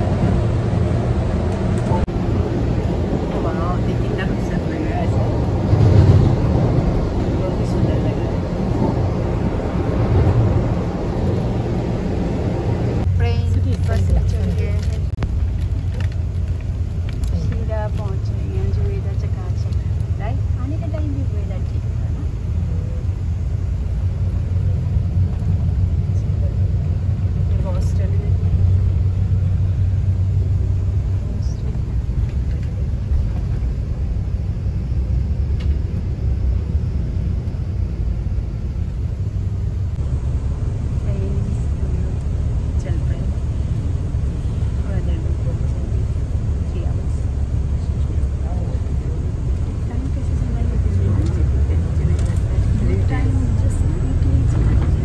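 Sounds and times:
bus engine and tyres rumbling: 0.0 - 55.0
quiet talking: 30.3 - 33.7, 44.6 - 55.0.

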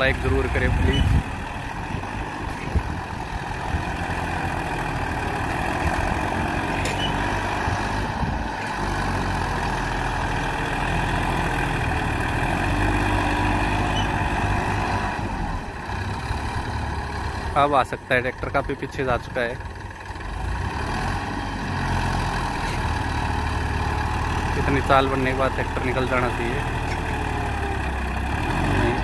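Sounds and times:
tractor diesel engine under load: 0.0 - 29.0.

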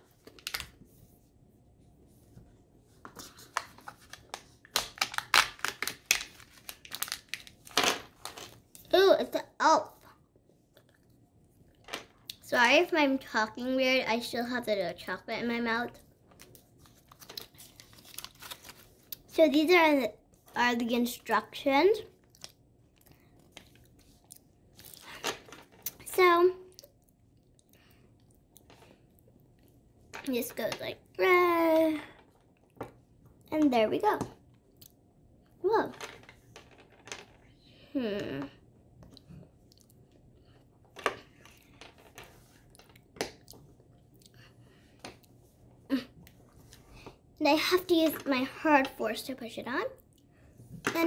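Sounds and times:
plastic wrapper crinkling and tearing: 0.2 - 0.7, 3.2 - 8.4, 16.4 - 19.2
paper leaflet handling: 16.9 - 18.9.

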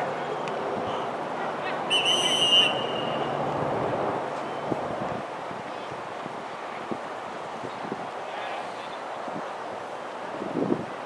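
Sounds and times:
outdoor background noise: 0.0 - 11.0
referee's whistle blast: 1.9 - 3.4.

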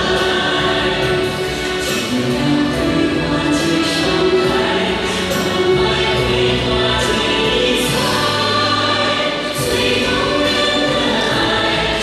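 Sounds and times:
children singing in chorus: 0.0 - 12.0.

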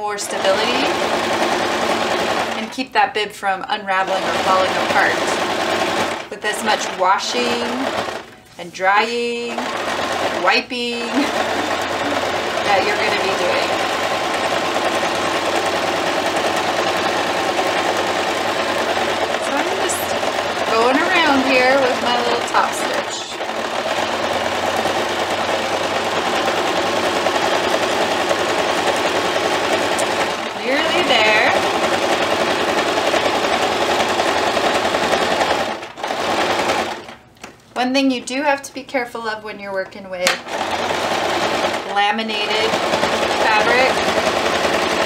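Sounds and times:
sewing machine running: 0.0 - 2.9, 3.9 - 37.2, 40.2 - 45.0.

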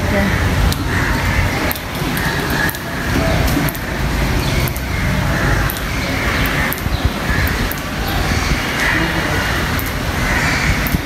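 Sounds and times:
car engine rumbling: 0.0 - 11.0.

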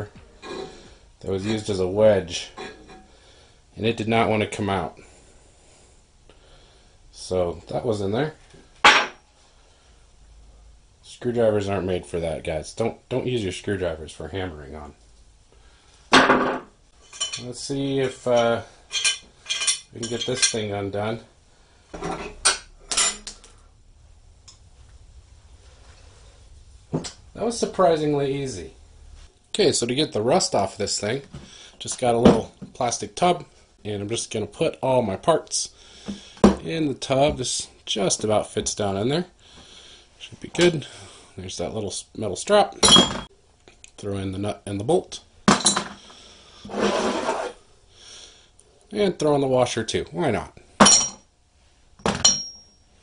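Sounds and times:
wrenches clinking on metal: 17.0 - 17.5, 18.4 - 20.7, 50.8 - 51.2, 52.0 - 52.8.

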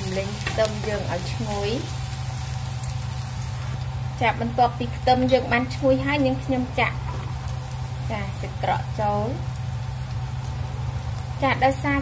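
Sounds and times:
garlic sizzling in oil: 0.0 - 12.0.

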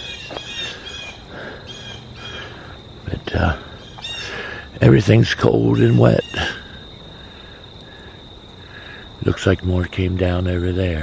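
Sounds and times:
insects trilling: 0.0 - 11.0
soft insect chirps: 0.0 - 11.0.

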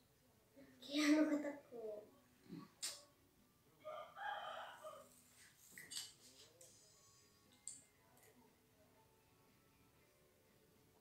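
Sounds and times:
soft clicks of small items: 5.1 - 6.9, 7.5 - 8.4.

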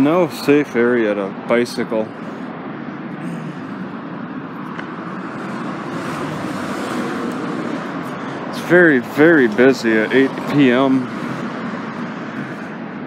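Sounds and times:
road traffic noise: 0.0 - 13.0.

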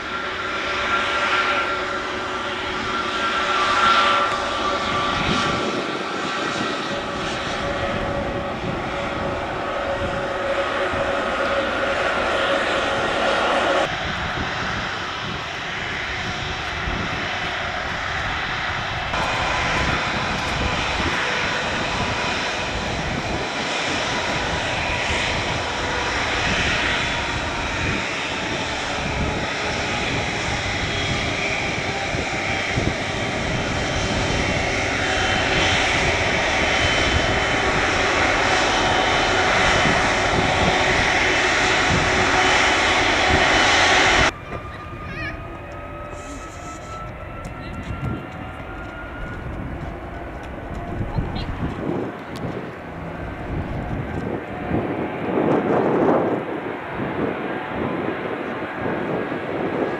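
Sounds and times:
jet engines whining at taxi power: 0.0 - 59.9.

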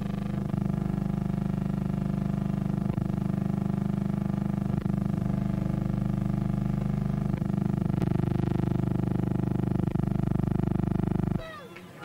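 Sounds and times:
steady buzzing drone: 0.0 - 11.4.

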